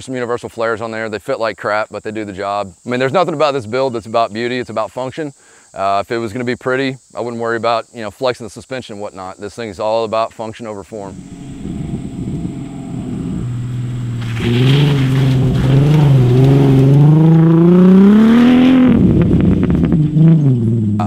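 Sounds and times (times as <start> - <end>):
car engine revving: 11.1 - 21.0.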